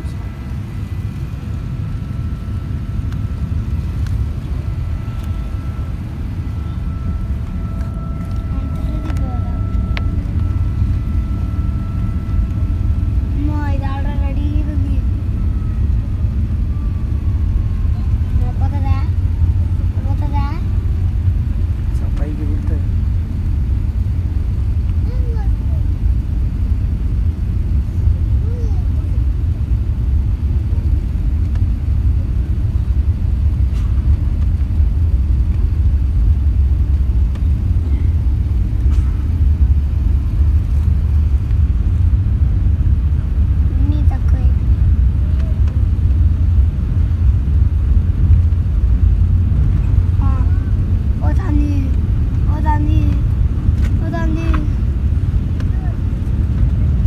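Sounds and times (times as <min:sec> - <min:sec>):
jet engine rumble in cabin: 0:00.0 - 0:57.0.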